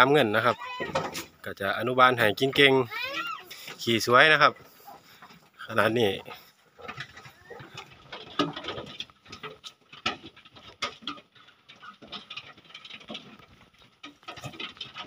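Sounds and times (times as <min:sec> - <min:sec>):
hoof taps on metal: 0:02.4 - 0:15.0
piglet noises: 0:02.6 - 0:03.8, 0:06.2 - 0:08.8.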